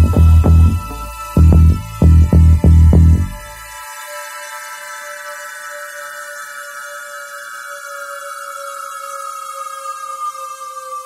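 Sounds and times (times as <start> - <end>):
sustained electronic tones music: 0.0 - 10.7.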